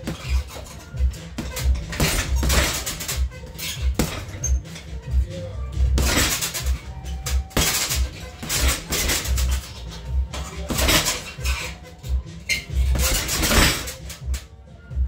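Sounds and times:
music with pulsing bass beat: 0.0s - 15.0s.

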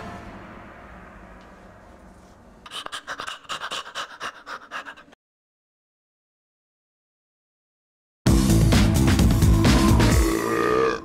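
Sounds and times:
rapid rhythmic panting: 2.7s - 5.2s.

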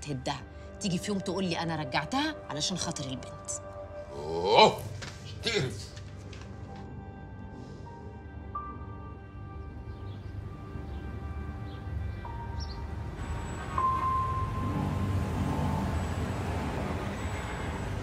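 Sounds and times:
street traffic rumble: 9.9s - 18.0s.

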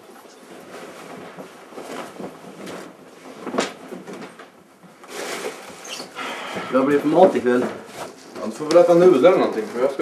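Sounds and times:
rustling and handling noises: 0.0s - 10.0s.

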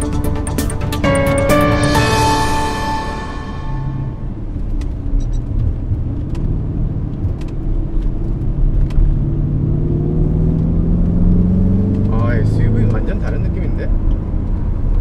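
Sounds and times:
car engine accelerating: 0.0s - 15.0s.

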